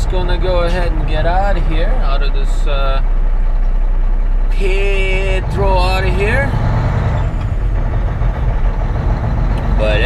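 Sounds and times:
diesel truck engine running: 0.0s - 10.0s.

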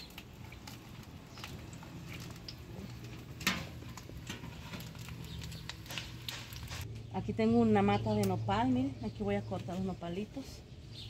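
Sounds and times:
crackles and pops: 0.0s - 6.9s
vegetables frying in a pan: 0.0s - 6.9s.

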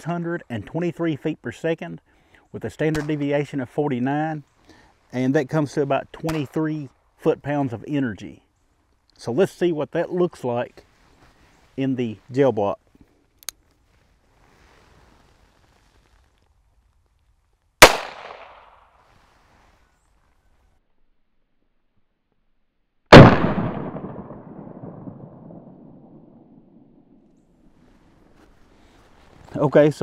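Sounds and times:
revolver gunshots: 17.8s - 18.8s, 23.1s - 27.2s.

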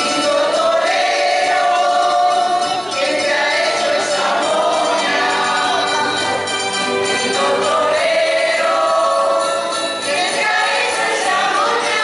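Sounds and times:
group of singers: 0.0s - 12.0s.

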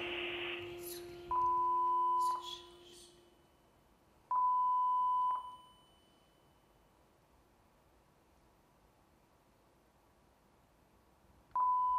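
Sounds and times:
electronic beeps: 0.0s - 3.0s.

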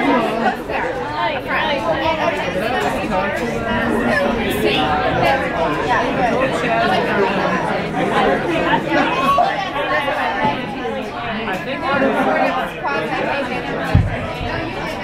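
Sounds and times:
crowd chatter: 0.0s - 15.0s.

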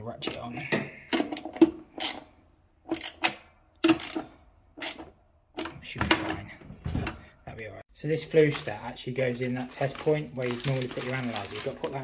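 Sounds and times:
socket ratchet clicking: 2.9s - 4.2s, 4.8s - 5.1s.

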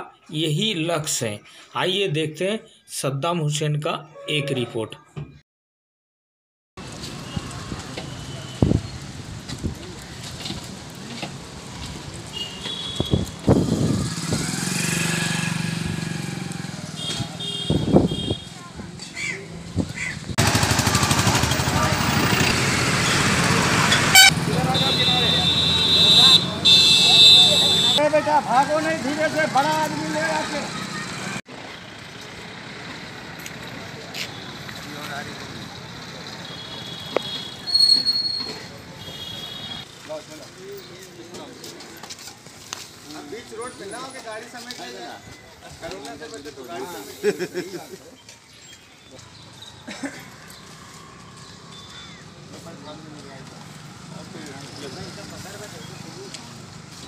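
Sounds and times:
traffic noise: 6.8s - 57.0s
vehicle engine passing by: 13.4s - 17.5s, 18.6s - 26.6s, 28.4s - 33.9s.

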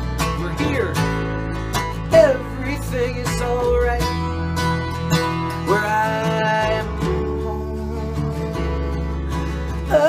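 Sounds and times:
acoustic bass guitar line: 0.0s - 10.0s
acoustic guitar strumming chords: 0.0s - 10.0s.

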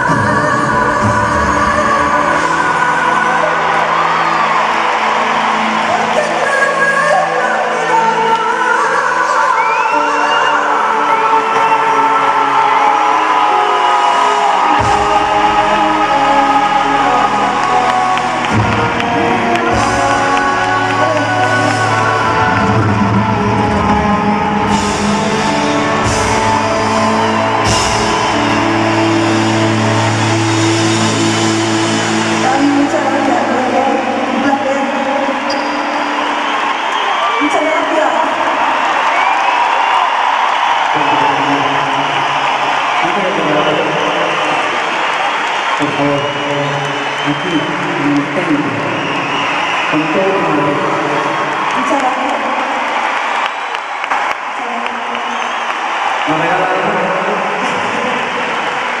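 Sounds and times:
live pop music with duet: 0.0s - 59.0s
crowd whooping: 2.4s - 59.0s.

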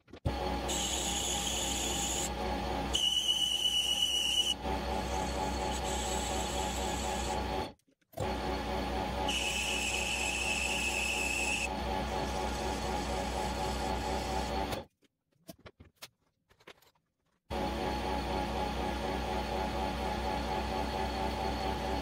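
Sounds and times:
metal lathe gear hum: 0.4s - 14.8s
high-pitched cutting whine: 0.7s - 7.6s.

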